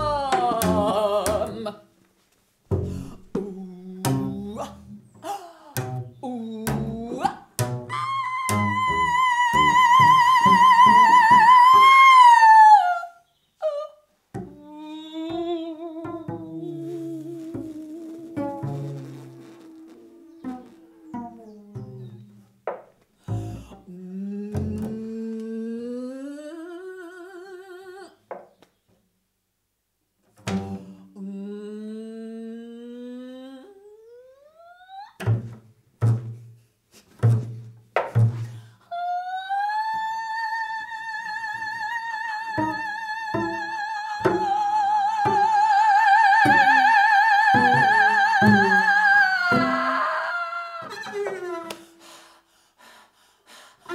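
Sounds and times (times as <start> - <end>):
plucked double bass: 0.0 - 1.7, 2.7 - 5.2, 5.8 - 12.1, 14.4 - 14.6, 15.3 - 25.1, 30.4 - 31.0, 35.2 - 38.6, 42.4 - 50.0
woman singing wavering lines: 0.0 - 1.8, 3.2 - 22.5, 23.5 - 28.2, 31.1 - 35.2, 38.9 - 51.7.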